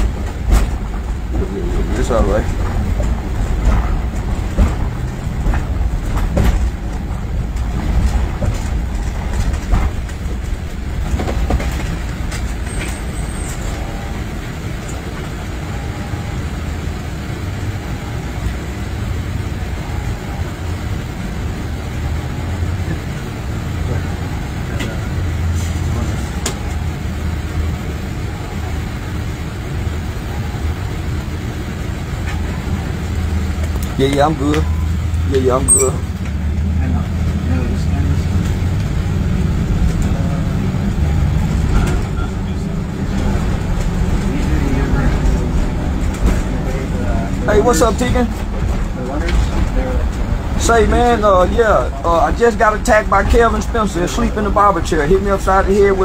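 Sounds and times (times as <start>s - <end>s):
vehicle road rumble: 0.0s - 56.0s.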